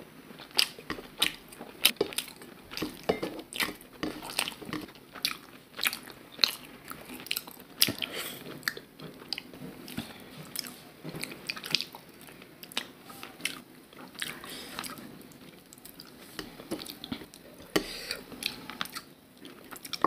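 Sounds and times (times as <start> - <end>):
chewing and biting food: 0.4 - 17.4, 18.3 - 20.0.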